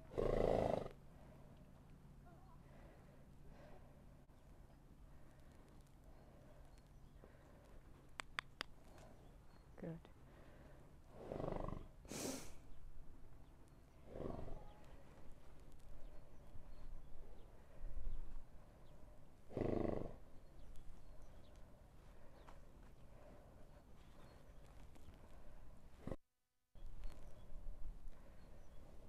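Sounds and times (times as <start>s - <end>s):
horse snorting: 0.0s - 1.0s, 11.1s - 12.0s, 14.0s - 14.7s, 19.5s - 20.2s.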